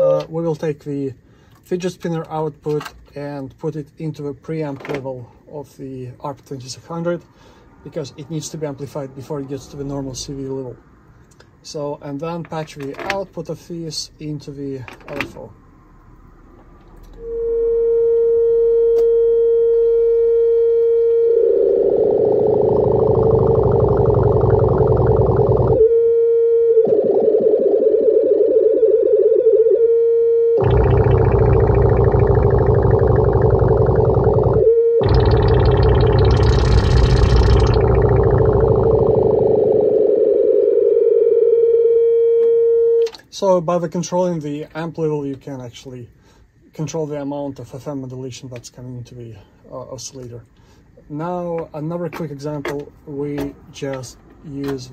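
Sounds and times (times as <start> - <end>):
synthesizer sine tone warbling: 17.1 - 29.4, 30.3 - 40.8.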